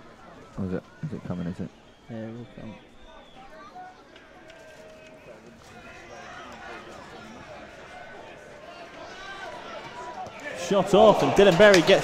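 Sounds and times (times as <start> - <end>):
players and spectators calling out: 0.0 - 12.0.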